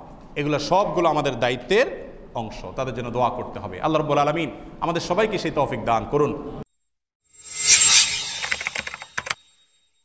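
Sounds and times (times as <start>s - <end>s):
whoosh: 7.4s - 9.4s
sharp clicks: 8.4s - 9.4s.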